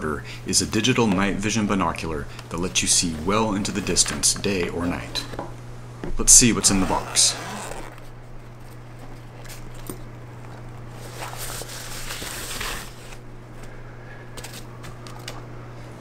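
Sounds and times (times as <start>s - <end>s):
low steady hum: 0.0s - 16.0s
bag rustling and crinkling: 6.6s - 13.2s.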